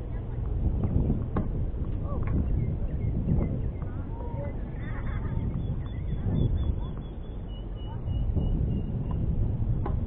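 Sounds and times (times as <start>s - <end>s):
low steady rumble: 0.0s - 10.0s
bird calls: 2.4s - 9.2s.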